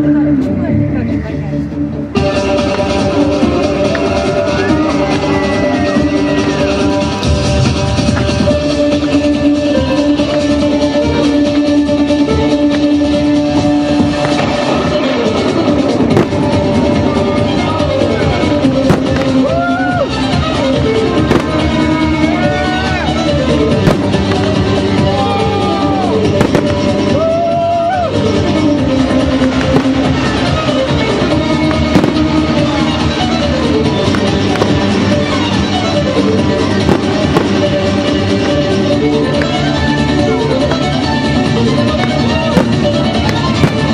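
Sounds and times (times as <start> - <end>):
music with sustained tones: 0.0 - 43.9
fireworks bangs: 14.1 - 17.1, 18.7 - 19.8, 21.1 - 22.1, 23.7 - 24.9, 26.2 - 27.2, 29.5 - 30.8, 31.6 - 33.1, 33.9 - 35.6, 36.7 - 38.5, 42.5 - 43.9
sharp crack: 18.8 - 19.5, 21.2 - 21.8, 23.8 - 24.6, 26.4 - 26.9, 29.5 - 30.1, 31.6 - 32.6, 34.1 - 34.9, 36.8 - 37.8, 42.0 - 43.9.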